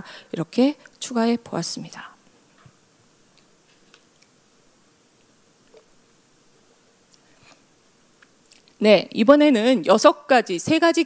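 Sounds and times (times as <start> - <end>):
woman speaking loudly: 8.8 - 11.0.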